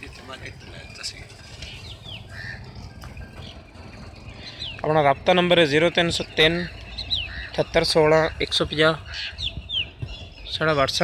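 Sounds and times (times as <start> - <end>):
high bird chirps: 0.3 - 11.0.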